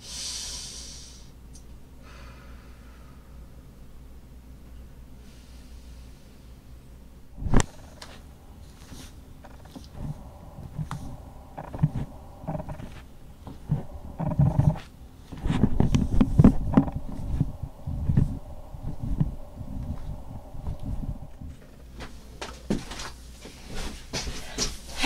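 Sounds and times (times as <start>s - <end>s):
rustling: 7.4s - 24.8s.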